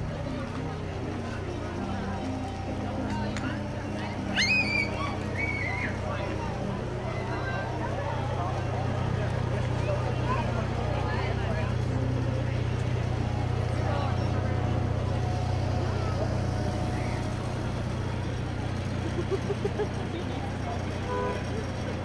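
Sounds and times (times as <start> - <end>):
indistinct chatter of people: 0.0 - 22.0
low engine hum: 0.0 - 22.0.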